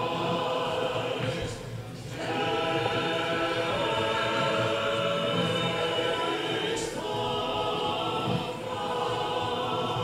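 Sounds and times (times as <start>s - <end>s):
choir singing sustained chant: 0.0s - 10.0s.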